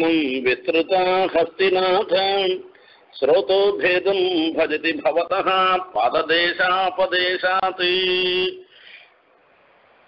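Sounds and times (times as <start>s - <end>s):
man chanting melodically: 0.0s - 8.7s.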